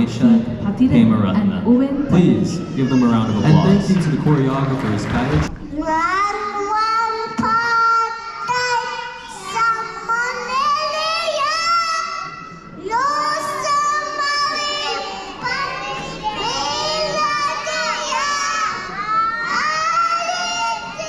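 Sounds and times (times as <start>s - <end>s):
children singing: 7.2s - 21.0s.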